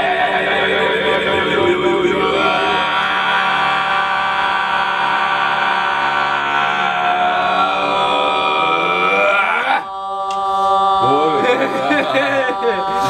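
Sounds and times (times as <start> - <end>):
group singing chant-like chorus: 0.0 - 13.0.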